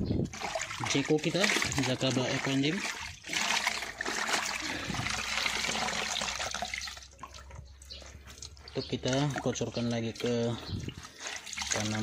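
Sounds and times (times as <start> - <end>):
water pouring and splashing: 0.0 - 12.0
cloth wrung out in bucket: 0.2 - 7.4.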